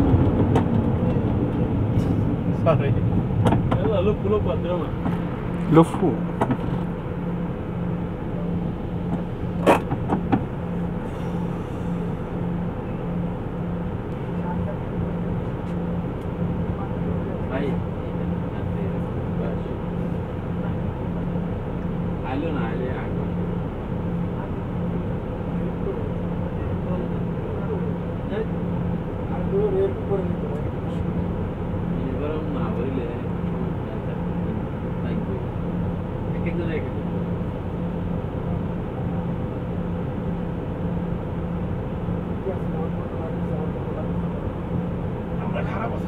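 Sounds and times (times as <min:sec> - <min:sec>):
vehicle engine idling: 0:00.0 - 0:46.0.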